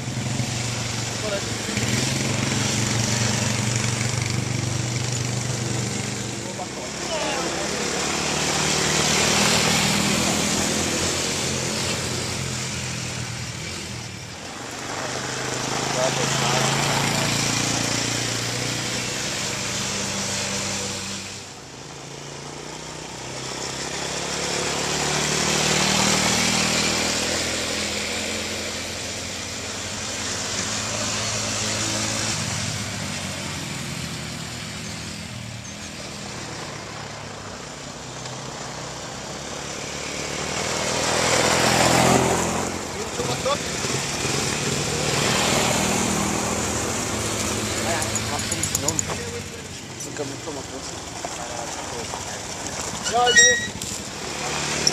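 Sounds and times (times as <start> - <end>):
quad bike engines revving: 0.0 - 54.9.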